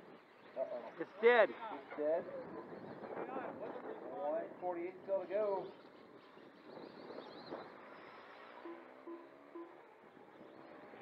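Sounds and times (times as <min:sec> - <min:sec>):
small electric motors whining: 0:05.7 - 0:11.0.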